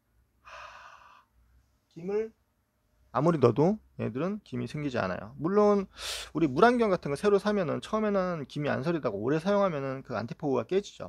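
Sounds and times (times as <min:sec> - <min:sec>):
forceful exhaled breath: 0:00.4 - 0:01.3.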